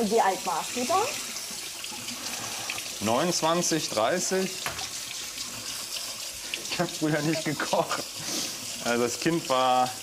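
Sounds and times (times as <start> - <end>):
kitchen background hiss: 0.0 - 10.0.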